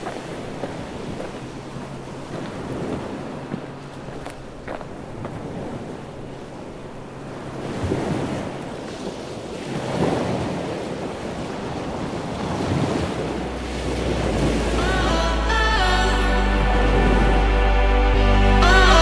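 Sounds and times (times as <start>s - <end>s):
small waves washing ashore: 0.0s - 17.5s.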